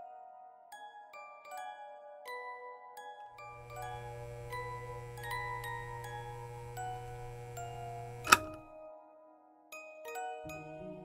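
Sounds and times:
low hum: 0:03.5 - 0:08.6
sharp click: 0:03.5 - 0:08.7.

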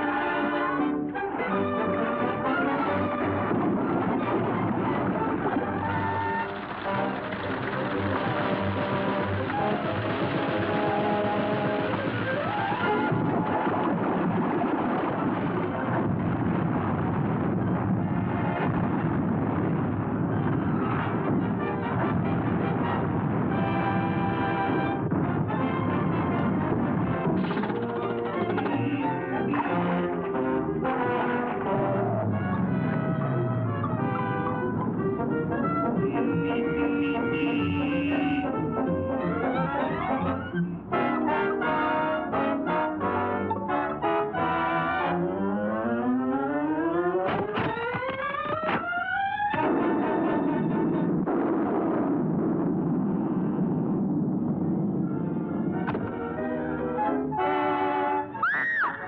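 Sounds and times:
orchestral cartoon music with brass: 0:00.0 - 0:13.9, 0:17.9 - 0:19.2, 0:20.2 - 0:51.2, 0:55.0 - 0:59.0.

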